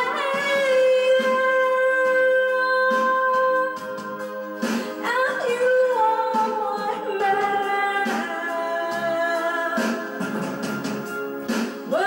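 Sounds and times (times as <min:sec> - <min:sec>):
woman singing into microphone: 0:00.0 - 0:10.5.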